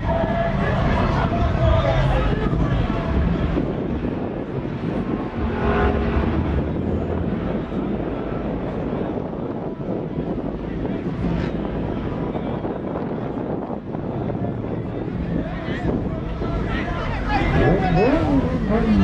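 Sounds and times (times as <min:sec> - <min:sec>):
low rumble of vehicles: 0:00.0 - 0:19.0
wind on microphone: 0:00.0 - 0:19.0.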